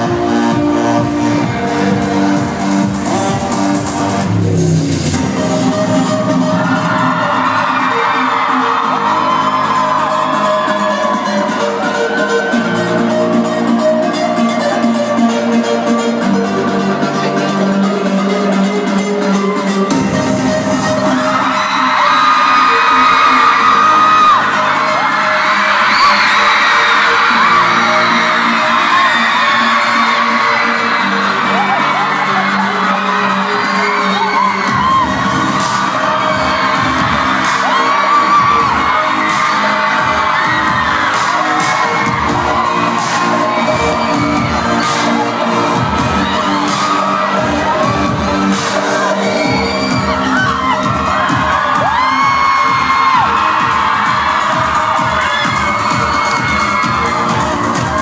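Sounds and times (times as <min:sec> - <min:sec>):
deep bass beat: 0:00.0 - 0:07.8, 0:34.4 - 0:58.0
synth chords: 0:00.0 - 0:22.0, 0:22.6 - 0:58.0
crowd whooping: 0:05.9 - 0:13.3, 0:19.2 - 0:58.0.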